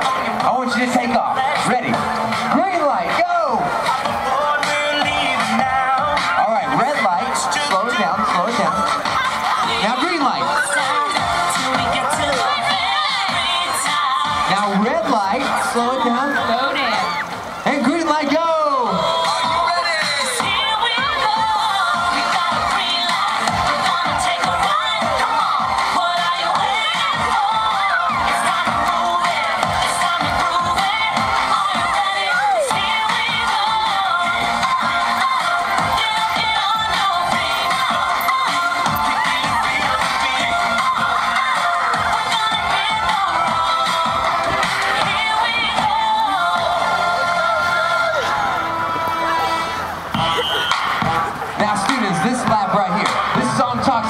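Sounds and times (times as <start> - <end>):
crowd shouting and cheering: 0.0 - 54.0
music playing: 0.0 - 54.0.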